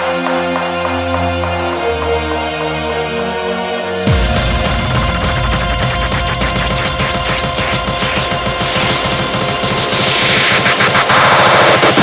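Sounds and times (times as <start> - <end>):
heavy kick and bass: 4.0 - 12.0
noise sweep: 4.1 - 12.0.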